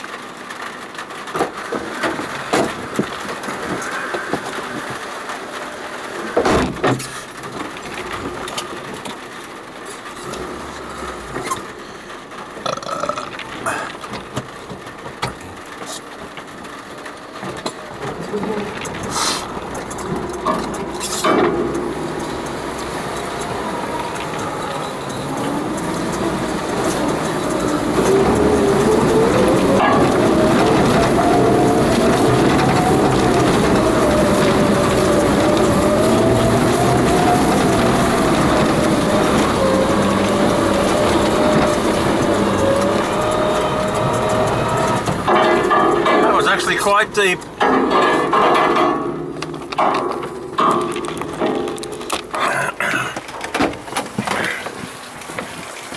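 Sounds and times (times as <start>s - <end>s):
car engine under load: 0.0s - 55.9s
water washing against car: 0.0s - 55.9s.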